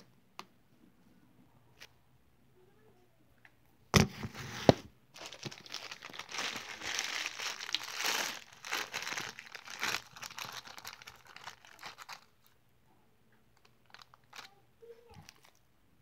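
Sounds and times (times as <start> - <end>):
close crinkling and crackling: 4.2 - 12.6, 13.6 - 15.6.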